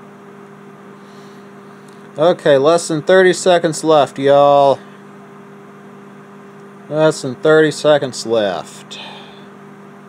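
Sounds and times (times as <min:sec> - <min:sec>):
microwave oven humming: 0:00.0 - 0:10.0.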